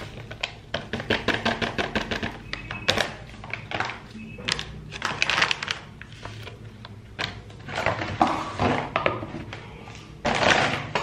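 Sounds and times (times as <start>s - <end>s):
plastic pouch crinkling: 3.0s - 6.7s.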